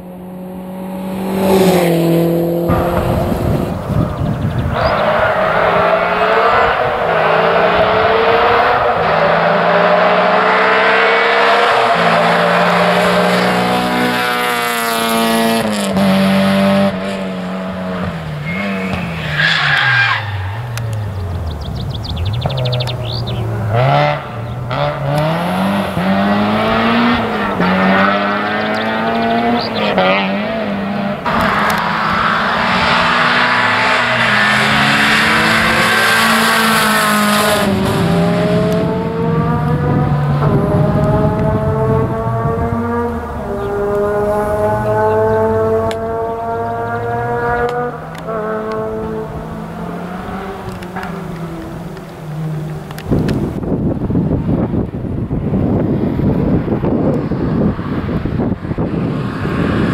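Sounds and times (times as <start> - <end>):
rally car engine revving: 0.0 - 59.9
tyre squeal: 18.4 - 20.7.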